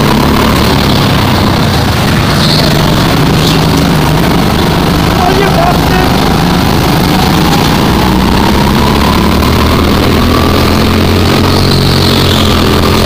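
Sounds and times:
go-kart engine accelerating: 0.0 - 13.0.

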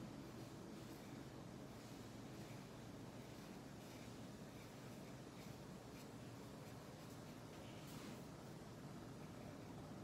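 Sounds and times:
low room hiss: 0.0 - 10.0
marker scratching on paper: 0.3 - 8.3.

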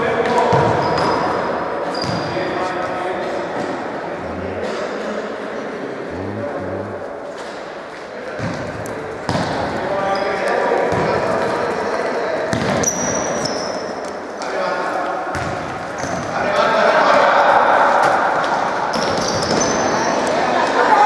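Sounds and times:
shoe squeaks: 0.8 - 2.4, 12.8 - 13.9
players calling out: 4.1 - 5.0, 6.0 - 7.2
ball kicked and bouncing on court: 15.3 - 16.2.

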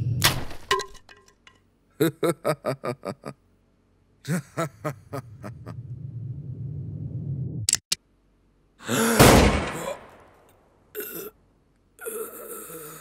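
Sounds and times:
man gasping and groaning: 8.8 - 10.1, 12.0 - 13.0
loud pistol shot: 9.2 - 10.3.

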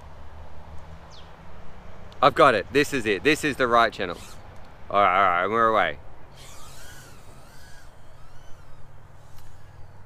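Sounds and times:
quadcopter motors whining: 4.0 - 4.4, 6.3 - 10.0.

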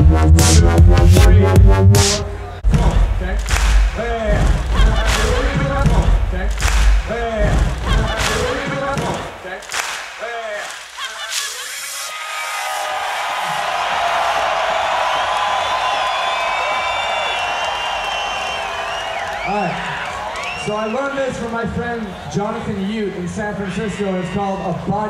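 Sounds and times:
electronic beat with heavy bass: 0.0 - 9.7
crowd noise: 0.0 - 25.0
high whistles: 15.0 - 21.2.

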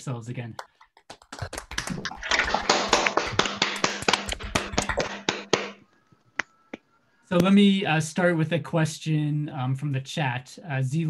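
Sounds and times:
people clapping: 0.6 - 5.8.

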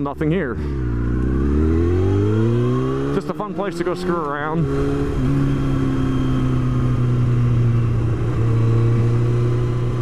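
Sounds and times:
motorcycle engine accelerating: 0.1 - 10.0.

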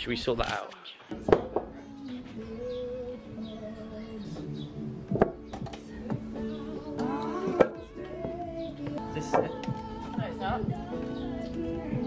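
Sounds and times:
background music: 1.1 - 12.0.

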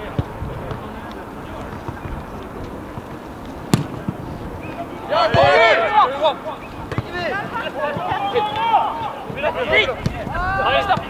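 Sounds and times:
football kicked hard: 3.7 - 4.2, 6.9 - 7.2.

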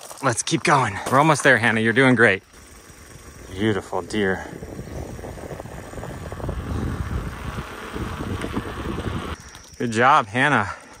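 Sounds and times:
wind buffeting microphone: 2.6 - 9.8.

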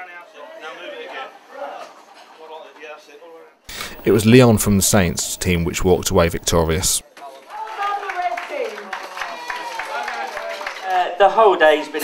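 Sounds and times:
faint voices: 3.7 - 7.0.

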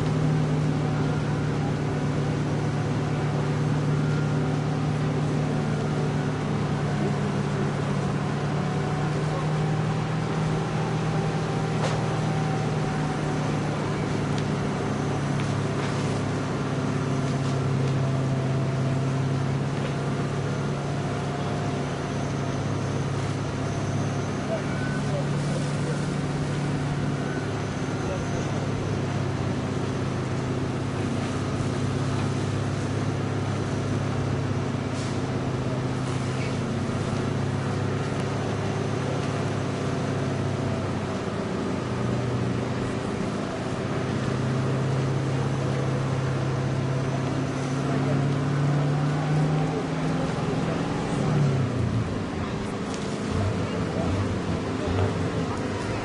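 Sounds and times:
fire engine running steadily: 0.0 - 56.0.

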